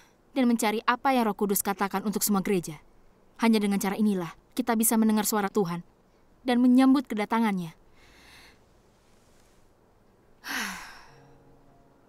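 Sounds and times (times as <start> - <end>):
soft sustained music notes: 8.9 - 12.0
woman sighing: 10.4 - 11.4.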